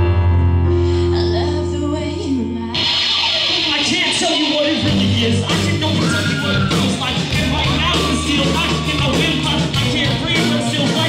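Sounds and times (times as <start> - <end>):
electric keyboard chords: 0.0 - 11.0.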